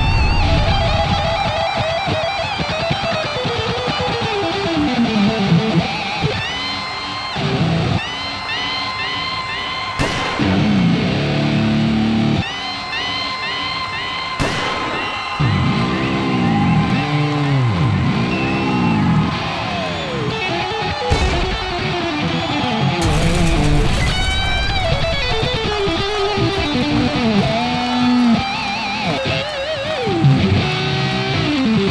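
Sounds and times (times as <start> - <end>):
electric guitar rock music: 0.0 - 31.9
sharp hits: 23.0 - 26.8.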